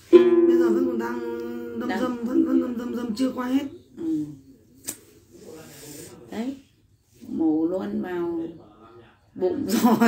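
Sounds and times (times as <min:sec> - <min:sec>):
woman singing note: 0:00.0 - 0:03.2.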